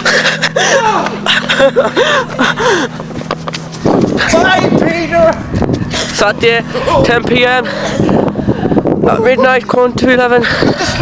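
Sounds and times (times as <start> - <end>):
person laughing breathlessly: 0.0 - 3.1, 7.6 - 8.9, 10.4 - 11.0.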